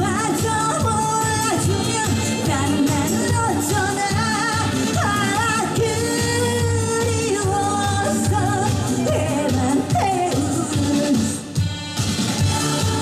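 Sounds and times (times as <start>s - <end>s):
woman singing into microphone: 0.0s - 11.5s
amplified accompaniment with beat: 0.0s - 13.0s.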